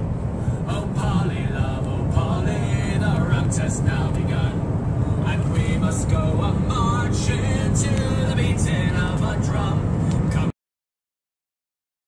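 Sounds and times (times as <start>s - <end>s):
car road and engine noise: 0.0s - 10.6s.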